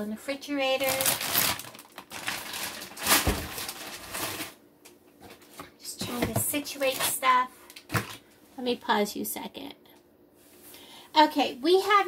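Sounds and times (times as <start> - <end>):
plastic bag rustling: 0.6 - 4.6.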